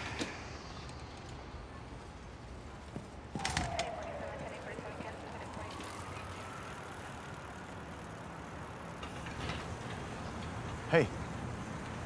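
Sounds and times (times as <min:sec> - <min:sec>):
faint rising tone: 0:00.0 - 0:02.6, 0:03.2 - 0:07.6
street ambience: 0:00.0 - 0:12.0.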